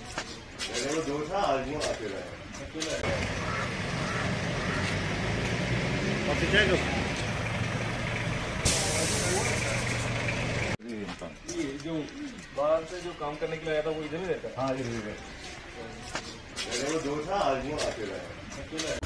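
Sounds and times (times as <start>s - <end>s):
heavy vehicle engine droning: 3.0s - 10.8s
loud high air hiss: 8.6s - 9.6s.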